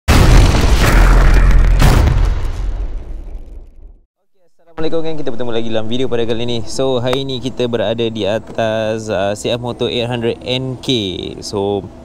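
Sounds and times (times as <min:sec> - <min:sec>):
deep boom sound effect: 0:00.1 - 0:04.0.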